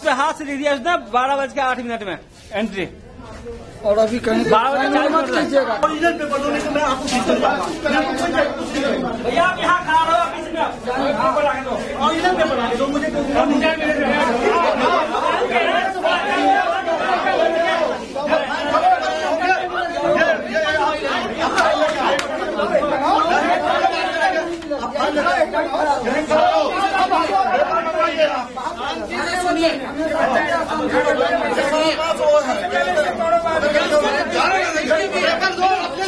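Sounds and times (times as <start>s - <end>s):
men arguing and shouting: 0.0s - 36.0s.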